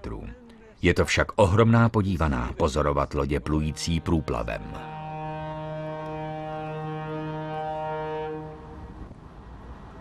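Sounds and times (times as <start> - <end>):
ship's horn blast: 3.6 - 9.1.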